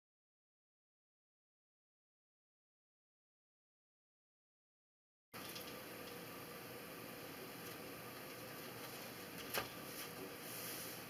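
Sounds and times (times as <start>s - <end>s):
faint steady hum: 5.4s - 11.0s
room hiss: 5.4s - 11.0s.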